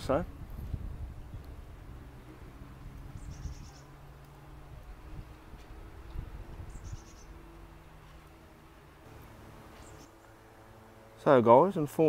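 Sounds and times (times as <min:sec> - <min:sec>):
low steady hum: 0:00.0 - 0:12.0
small bird trilling: 0:03.1 - 0:04.0, 0:06.7 - 0:07.4, 0:09.8 - 0:10.2.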